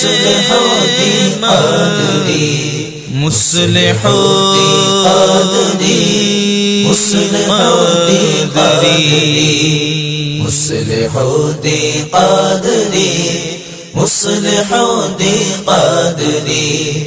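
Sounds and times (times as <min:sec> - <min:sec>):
devotional vocal chanting: 0:00.0 - 0:17.0.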